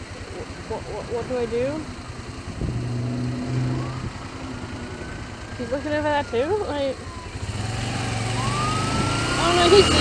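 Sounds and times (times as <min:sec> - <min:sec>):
motorcycle engine pulling away: 0:00.0 - 0:10.0
thin siren wail: 0:03.3 - 0:10.0.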